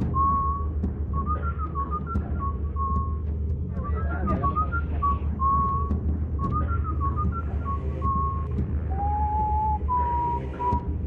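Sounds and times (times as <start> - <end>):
person whistling a tune: 0.0 - 3.2, 3.8 - 11.0
steady low hum: 0.0 - 11.0.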